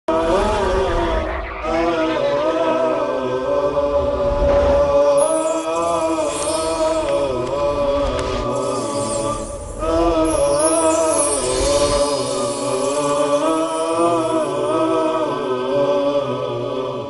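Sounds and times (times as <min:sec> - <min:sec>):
person singing slow melody: 0:00.1 - 0:17.0.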